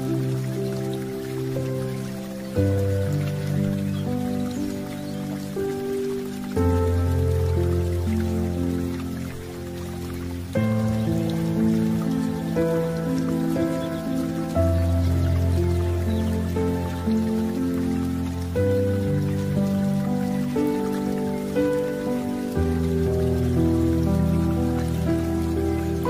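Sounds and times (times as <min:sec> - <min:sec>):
calm sustained chord music: 0:00.0 - 0:26.0
soft rain-like patter: 0:00.0 - 0:26.0.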